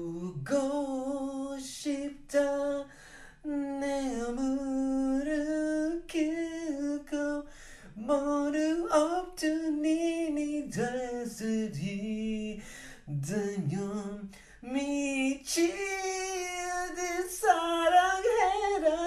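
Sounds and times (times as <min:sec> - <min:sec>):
person singing a cappella: 0:00.0 - 0:19.0.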